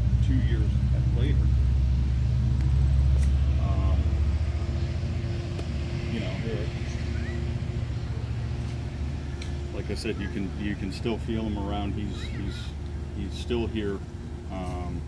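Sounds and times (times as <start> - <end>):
vehicle engine rumble: 0.0 - 15.0.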